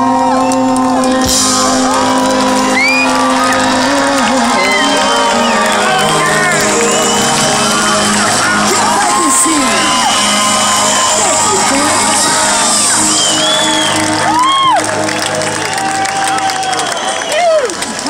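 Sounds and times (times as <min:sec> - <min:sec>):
band music: 0:00.0 - 0:18.0
crowd cheering and shouting: 0:00.0 - 0:18.0.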